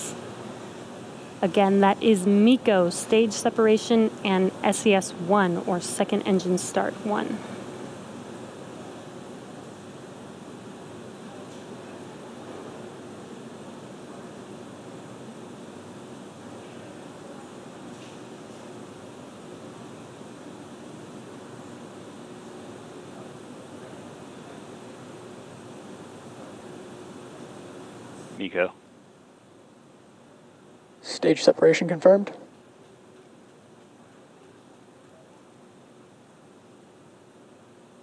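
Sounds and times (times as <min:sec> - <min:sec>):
faint low hum: 0:00.0 - 0:38.0.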